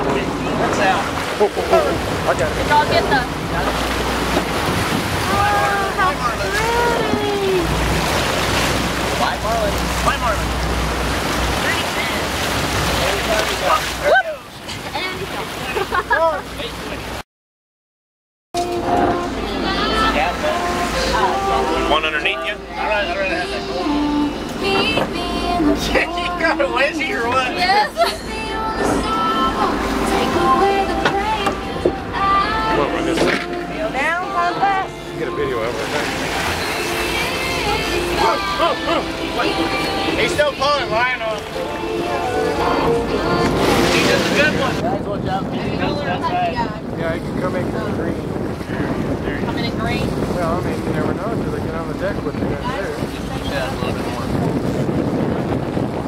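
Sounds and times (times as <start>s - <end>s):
voices calling out: 0.0s - 16.6s, 18.6s - 44.8s
water splashing along boat hull: 0.0s - 17.2s, 18.6s - 56.0s
wind and sea rush: 0.0s - 17.2s, 18.6s - 56.0s.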